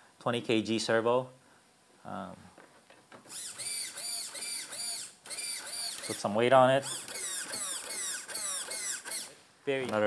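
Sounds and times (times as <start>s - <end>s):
steering servo whining: 3.3s - 6.2s, 6.8s - 9.4s.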